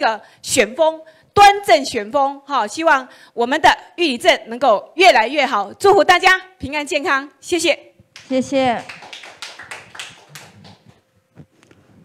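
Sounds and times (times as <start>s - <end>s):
audience hand clapping: 8.2s - 11.0s.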